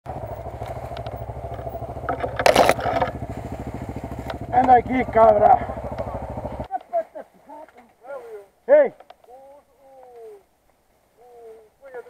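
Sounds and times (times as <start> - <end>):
dirt bike engine idling: 0.1 - 8.2.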